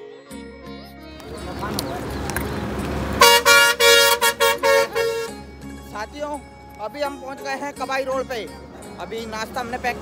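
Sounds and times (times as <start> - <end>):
bus horn honking: 3.0 - 5.5.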